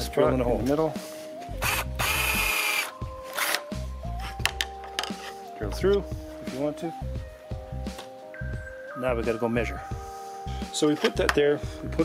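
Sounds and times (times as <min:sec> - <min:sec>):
cordless drill boring wood: 0:01.6 - 0:03.6.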